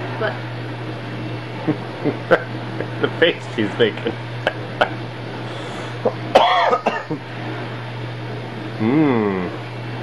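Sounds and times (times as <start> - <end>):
person coughing: 6.4 - 7.2.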